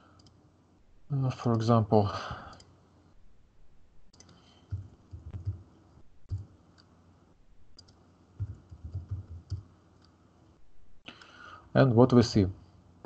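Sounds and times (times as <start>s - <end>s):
computer mouse clicking: 0.1s - 0.4s, 4.1s - 5.6s, 6.3s - 7.0s, 7.7s - 10.2s.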